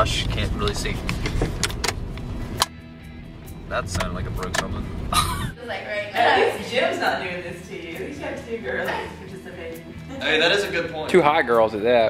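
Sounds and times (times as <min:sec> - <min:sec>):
road rumble inside moving car: 0:00.0 - 0:02.6, 0:03.6 - 0:05.6.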